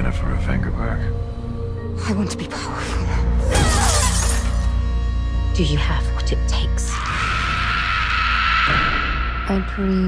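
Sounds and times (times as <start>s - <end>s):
glass shattering: 3.5s - 4.7s.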